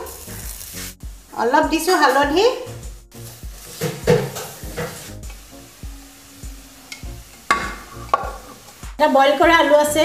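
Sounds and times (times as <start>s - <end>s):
paste sizzling and bubbling: 0.0s - 9.9s
background music with steady beat: 0.0s - 10.0s
spatula stirring in a pan: 3.1s - 5.6s.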